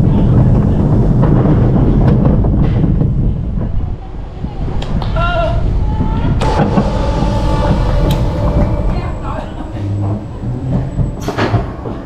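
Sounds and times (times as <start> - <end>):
roller coaster wheels rumbling: 5.7 - 12.0
steady whine: 6.4 - 12.0.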